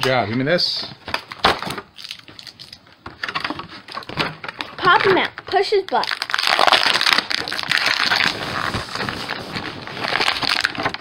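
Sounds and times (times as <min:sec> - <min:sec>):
plastic packaging crinkling: 0:01.1 - 0:02.8, 0:03.4 - 0:11.0.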